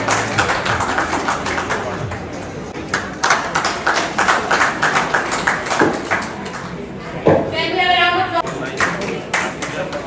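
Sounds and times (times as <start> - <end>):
hand clapping: 0.0 - 2.2, 2.9 - 6.7.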